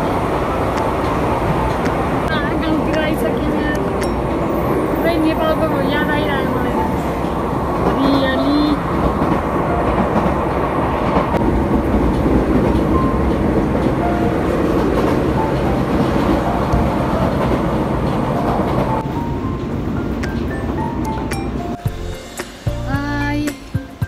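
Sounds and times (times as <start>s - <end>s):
train rumbling on rails: 0.0s - 24.0s.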